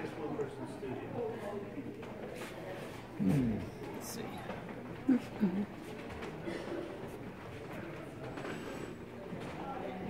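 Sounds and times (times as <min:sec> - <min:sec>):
indistinct background voices: 0:01.0 - 0:10.0.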